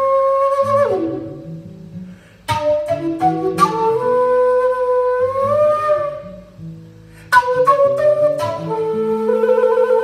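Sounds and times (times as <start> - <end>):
low cane flute long note: 0.0 - 1.6, 2.5 - 6.6, 7.3 - 10.0.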